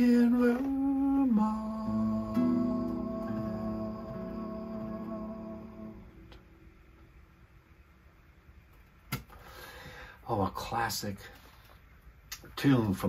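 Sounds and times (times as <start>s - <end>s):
acoustic guitar chord ringing: 0.0s - 7.3s.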